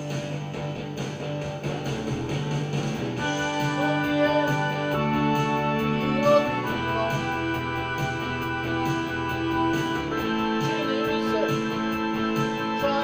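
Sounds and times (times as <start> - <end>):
electronic keyboard with beat: 0.0 - 13.0
man singing: 3.4 - 7.6, 10.2 - 13.0.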